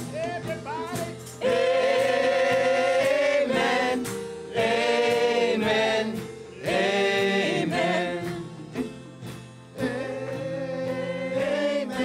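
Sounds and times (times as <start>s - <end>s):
worship song singing: 0.0s - 12.0s.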